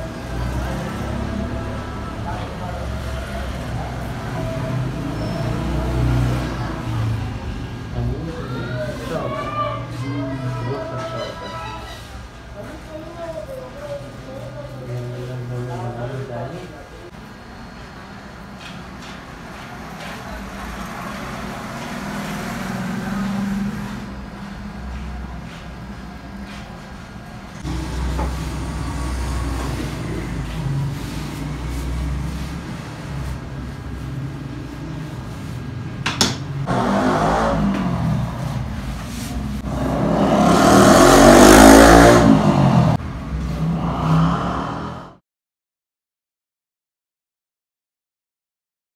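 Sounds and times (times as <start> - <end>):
vehicle engine revving: 0.0 - 8.2, 20.4 - 25.6, 27.5 - 35.9, 36.6 - 45.2.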